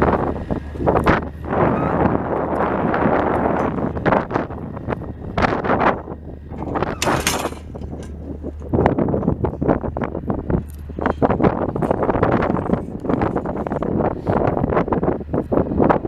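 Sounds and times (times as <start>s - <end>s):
steady low hum: 0.0s - 16.0s
wind buffeting microphone: 0.0s - 16.0s.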